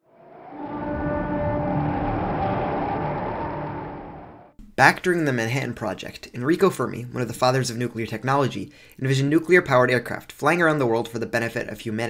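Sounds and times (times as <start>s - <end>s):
noisy transition swell: 0.0s - 4.6s.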